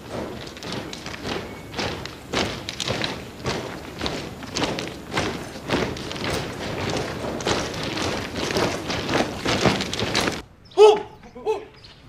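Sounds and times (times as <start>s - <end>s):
soldiers marching footsteps: 0.0s - 10.4s.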